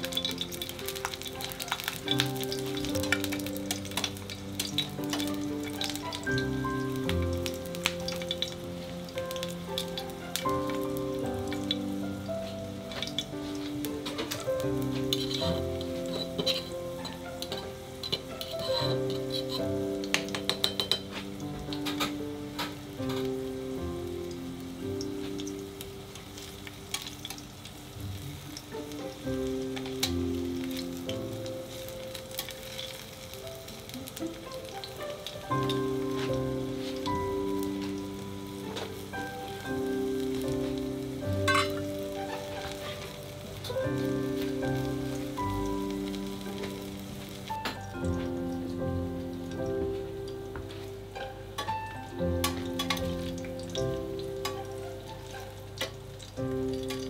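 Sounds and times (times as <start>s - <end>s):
background music: 0.0s - 57.0s
garlic sizzling in oil: 0.0s - 57.0s
metal tongs clicking on pan: 0.1s - 6.5s, 14.0s - 21.1s, 26.9s - 27.4s, 29.8s - 30.2s, 41.5s - 41.8s, 52.4s - 53.2s, 56.7s - 57.0s.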